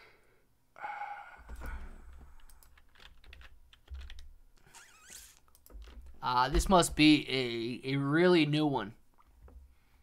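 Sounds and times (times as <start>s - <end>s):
keyboard typing: 1.6s - 4.4s.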